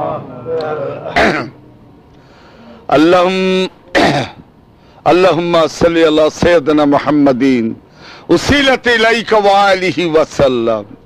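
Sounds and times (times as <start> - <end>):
man coughing: 1.1 - 1.6, 3.9 - 4.4.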